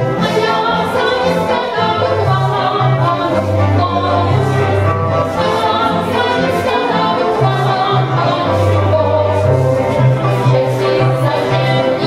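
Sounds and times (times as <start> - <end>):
folk dance music with bass: 0.0 - 12.0
voices singing together: 0.0 - 12.0.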